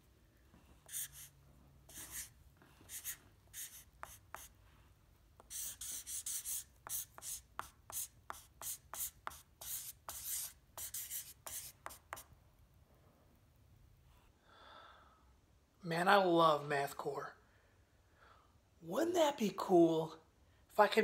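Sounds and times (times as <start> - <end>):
marker writing on paper: 0.8 - 4.6, 5.4 - 12.3.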